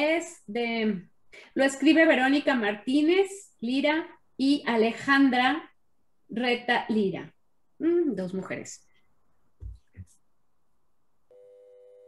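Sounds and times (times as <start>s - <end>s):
faint steady electronic tone: 11.3s - 12.0s.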